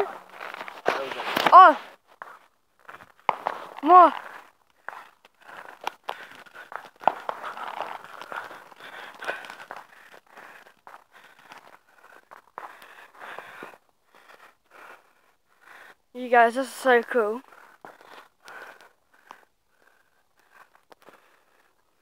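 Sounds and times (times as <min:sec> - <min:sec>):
crinkling noises: 0:00.0 - 0:15.6, 0:17.4 - 0:22.0.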